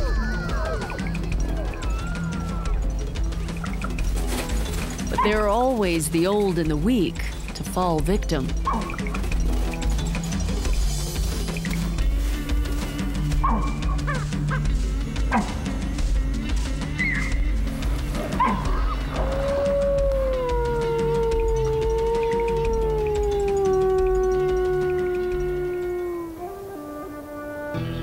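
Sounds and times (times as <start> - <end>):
wolf howling: 0.0 - 3.1, 13.2 - 14.7, 18.2 - 27.4
low music score: 11.8 - 28.0.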